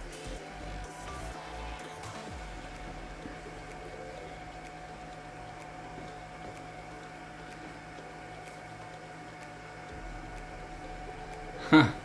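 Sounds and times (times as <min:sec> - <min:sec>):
high-pitched whine: 0:00.0 - 0:12.0
low electrical hum: 0:00.0 - 0:12.0
faint ticks: 0:01.8 - 0:11.5.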